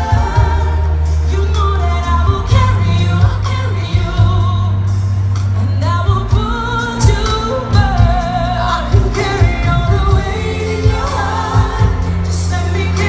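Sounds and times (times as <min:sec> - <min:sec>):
band with heavy bass and drums: 0:00.0 - 0:13.0
woman singing with vibrato: 0:00.0 - 0:13.0.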